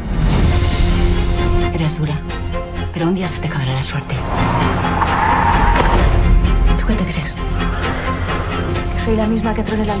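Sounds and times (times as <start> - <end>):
trailer music: 0.0 - 10.0
car tyres squealing: 4.2 - 6.2.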